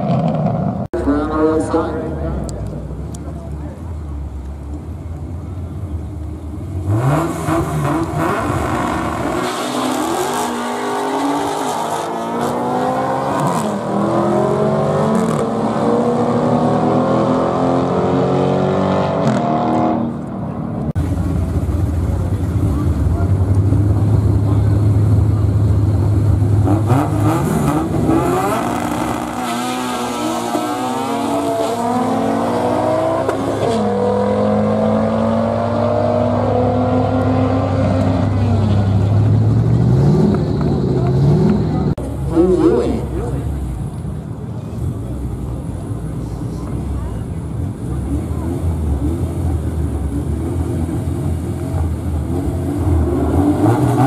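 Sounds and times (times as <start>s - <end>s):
car engine droning: 0.0s - 54.0s
car engines accelerating hard: 0.0s - 54.0s.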